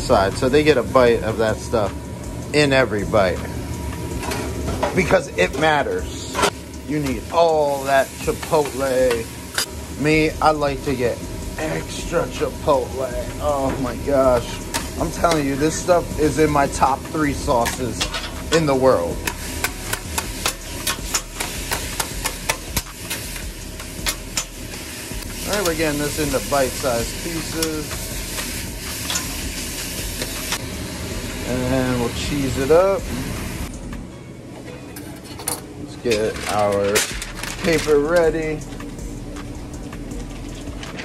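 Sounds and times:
kitchen equipment hum: 0.0s - 41.0s.

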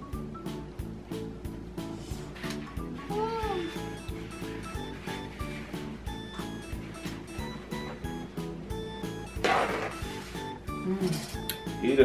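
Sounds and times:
upbeat background music: 0.0s - 12.0s
girl humming mm: 3.1s - 3.9s, 10.7s - 11.5s.

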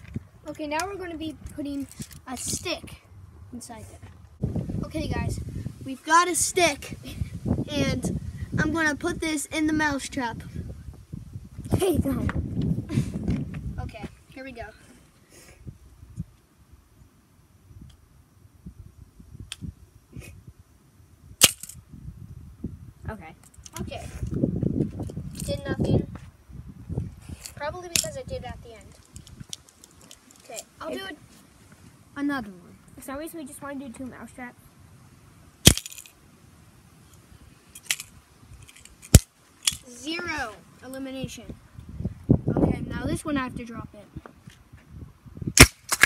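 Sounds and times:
snap trap clicking and snapping: 21.4s - 21.8s, 35.7s - 36.1s, 37.8s - 39.9s, 45.6s - 46.0s
mouse trap snapping shut: 35.7s - 36.0s, 39.1s - 39.8s.

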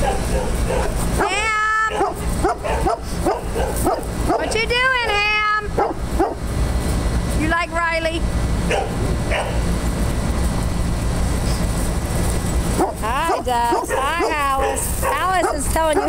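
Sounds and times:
dogs yipping: 0.0s - 6.4s, 8.7s - 9.7s, 12.7s - 16.0s.

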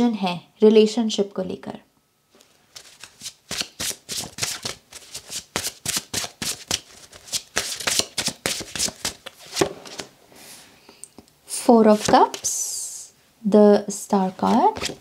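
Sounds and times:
cards being shuffled: 2.4s - 10.1s, 11.9s - 12.5s, 14.4s - 15.0s.

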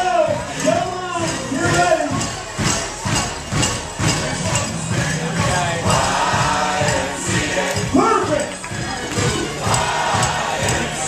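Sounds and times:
crowd noise: 0.0s - 11.0s
loud music: 0.0s - 11.0s
hand claps: 6.8s - 11.0s.

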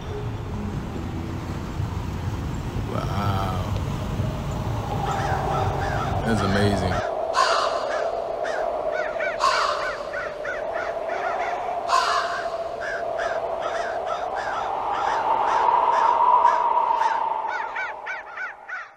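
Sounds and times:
steady eerie tone: 0.0s - 18.9s
crows cawing: 5.0s - 18.9s.

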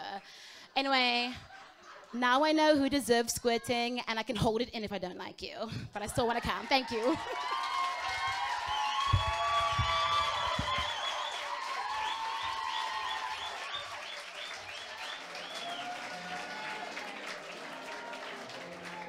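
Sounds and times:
audience applauding: 6.4s - 19.0s.

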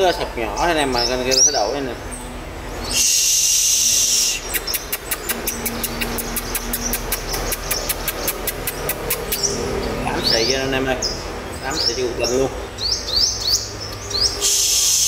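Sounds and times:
bird harsh hissing rasp: 2.8s - 9.6s, 14.2s - 15.0s
bird sharp ticks: 4.2s - 9.6s.

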